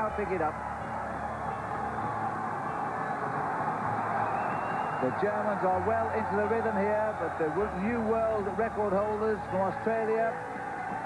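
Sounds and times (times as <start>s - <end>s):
velodrome crowd roar: 0.0s - 11.0s.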